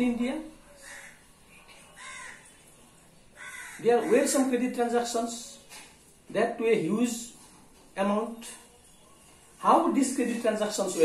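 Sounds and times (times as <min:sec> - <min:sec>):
crow cawing: 0:00.8 - 0:01.3, 0:02.0 - 0:02.5, 0:03.4 - 0:04.2.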